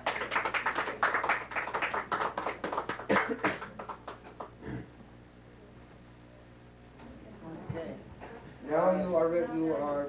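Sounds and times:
people clapping: 0.0s - 4.7s.

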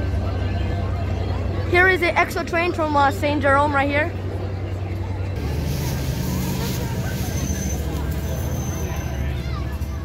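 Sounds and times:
crowd voices chattering: 0.0s - 10.0s
diesel train rumbling: 0.0s - 10.0s
thin high squeal: 6.3s - 9.6s.

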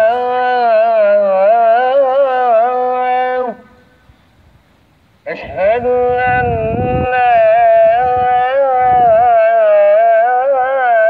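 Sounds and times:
call to prayer over loudspeakers: 0.0s - 4.1s, 5.2s - 11.0s.

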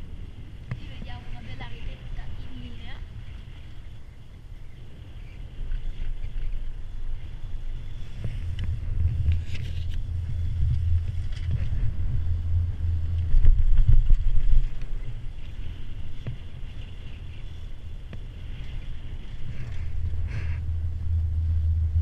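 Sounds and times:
chairlift rumbling: 0.0s - 22.0s
wind on microphone: 0.0s - 22.0s.

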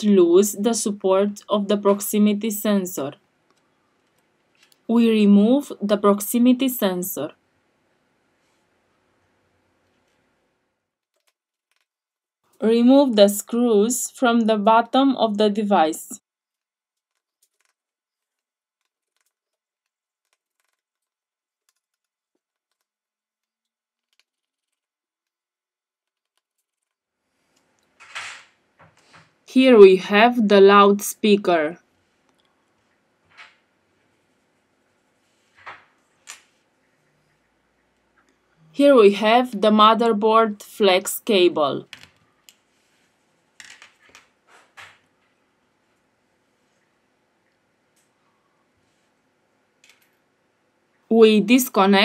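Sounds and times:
faint clicks and rustles: 3.2s - 4.9s, 9.7s - 12.6s, 16.4s - 29.4s.

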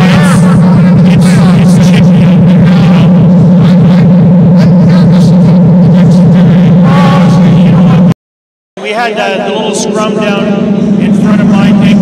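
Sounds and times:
loud steady low drone: 0.0s - 8.2s, 8.8s - 12.0s
men talking: 0.0s - 8.2s, 8.8s - 12.0s.

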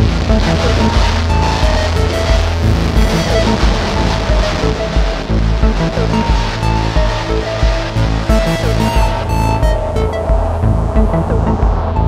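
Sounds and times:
electronic music: 0.0s - 12.0s
heavy bass line: 0.0s - 12.0s
sustained synth tones: 0.0s - 12.0s.

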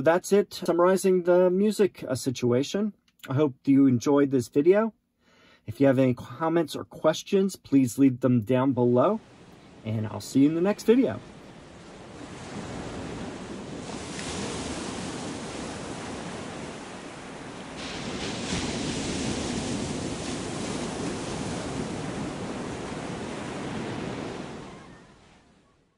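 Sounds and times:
ocean waves washing in: 8.8s - 25.9s.

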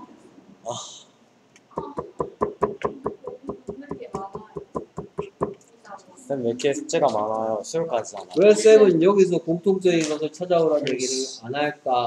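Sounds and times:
stylus tapping on screen: 1.5s - 5.7s.

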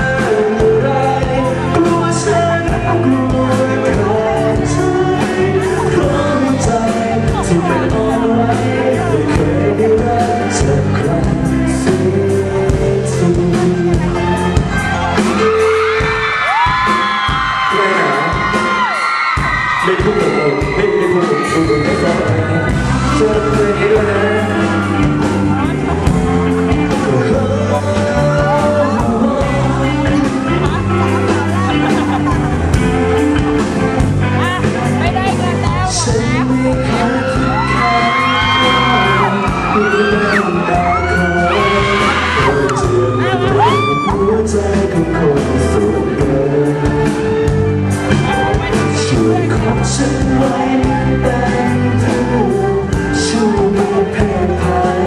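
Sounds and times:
man singing into microphone: 0.0s - 47.6s, 48.4s - 55.0s
instrumental backing with bass: 0.0s - 55.0s
live pop-rock band: 0.0s - 55.0s
man singing high note: 19.8s - 25.7s, 35.9s - 46.9s.

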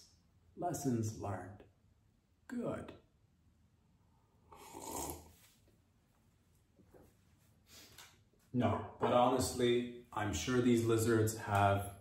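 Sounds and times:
slurping sip from a mug: 4.5s - 5.6s.

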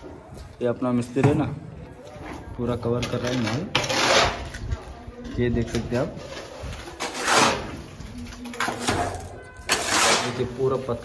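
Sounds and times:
wet mortar scraped by hand: 3.0s - 11.0s.

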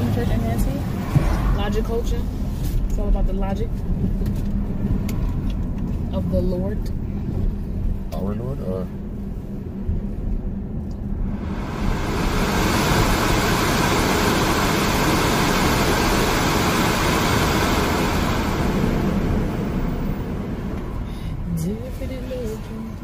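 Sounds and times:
engine and road rumble: 0.0s - 23.0s.

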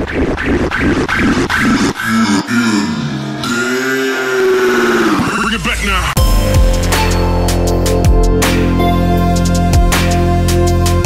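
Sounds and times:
slowed voice-like tone: 1.5s - 5.6s.

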